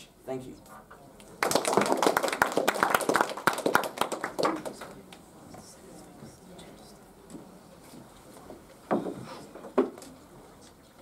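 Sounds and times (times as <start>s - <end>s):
small audience clapping: 1.2s - 5.3s.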